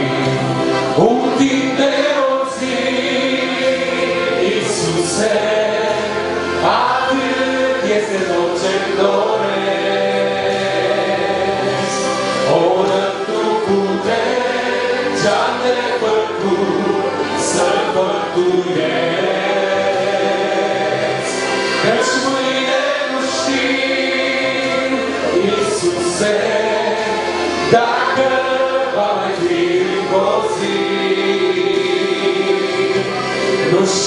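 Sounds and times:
congregation singing a hymn: 0:00.0 - 0:34.0
musical accompaniment: 0:00.0 - 0:34.0.

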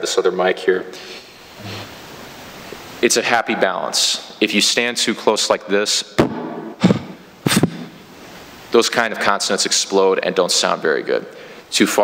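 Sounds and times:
man speaking into microphone: 0:00.0 - 0:01.0, 0:03.0 - 0:06.2, 0:08.7 - 0:12.0
plosive microphone pops: 0:06.2 - 0:08.0.

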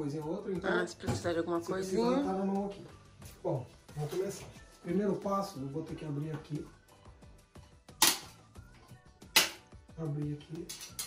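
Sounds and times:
faint background music: 0:00.0 - 0:11.0
sharp snap click: 0:08.0 - 0:08.3, 0:09.3 - 0:09.6.

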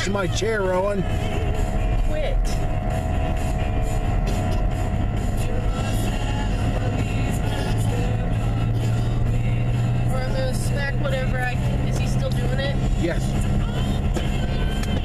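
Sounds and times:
car road and engine drone: 0:00.0 - 0:15.0
music playing: 0:00.0 - 0:15.0.

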